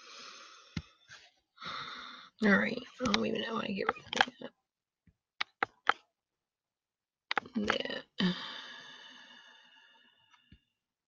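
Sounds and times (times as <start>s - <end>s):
breathy exhale: 8.2s - 10.4s.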